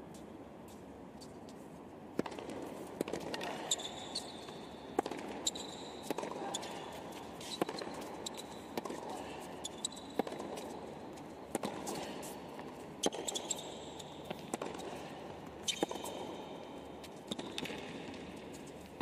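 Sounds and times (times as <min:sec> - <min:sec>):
shoe squeaks on court: 0:03.6 - 0:08.8, 0:09.6 - 0:10.8, 0:13.0 - 0:14.5, 0:15.6 - 0:16.2
racquet striking tennis ball: 0:05.0 - 0:06.5.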